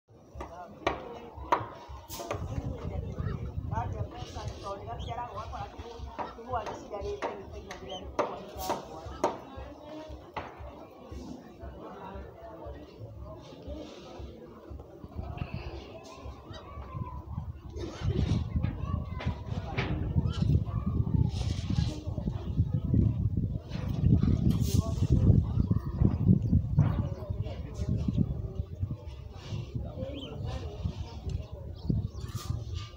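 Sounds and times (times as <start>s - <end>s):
faint background voices: 0.1s - 32.9s.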